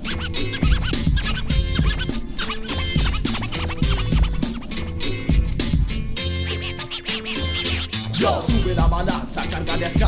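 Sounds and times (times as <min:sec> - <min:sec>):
drum beat and bass line: 0:00.0 - 0:10.0
turntable scratching: 0:00.0 - 0:10.0.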